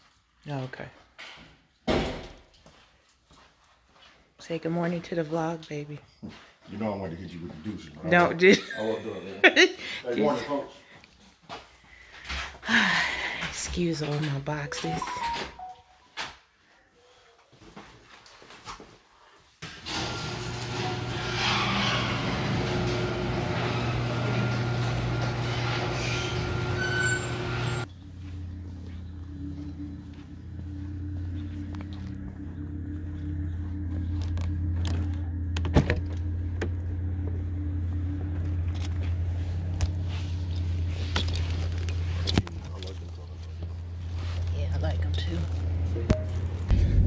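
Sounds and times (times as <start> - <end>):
garage door opener motor humming: 19.7 - 42.2
car engine idling: 27.8 - 47.0.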